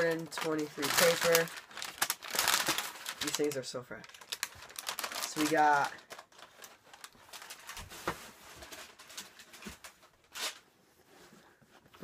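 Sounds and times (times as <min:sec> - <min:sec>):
wrapping paper rustling: 0:00.0 - 0:10.6.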